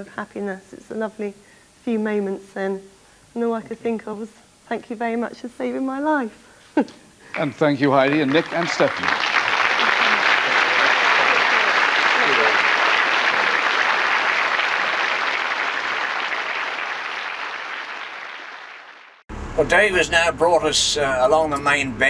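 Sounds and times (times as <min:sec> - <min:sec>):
audience applauding: 0:07.2 - 0:19.2.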